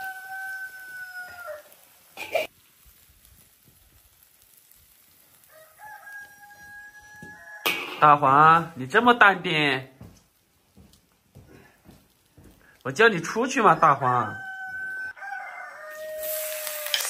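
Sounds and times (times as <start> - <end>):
rooster crowing: 0.0 - 1.8, 5.5 - 8.0, 13.7 - 17.0.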